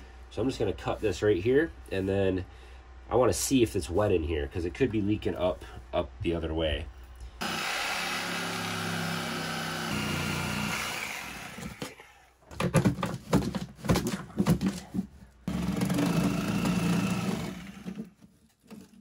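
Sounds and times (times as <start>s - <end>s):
knocking and rattling: 12.5s - 19.0s.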